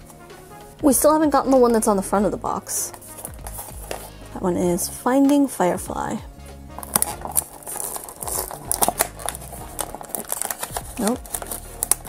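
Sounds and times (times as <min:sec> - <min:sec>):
cardboard box tearing: 0:06.8 - 0:12.0.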